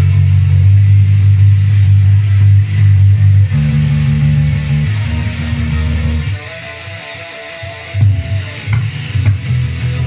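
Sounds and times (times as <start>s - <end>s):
electric bass line: 0.0s - 10.0s
rock band with guitars: 0.0s - 10.0s.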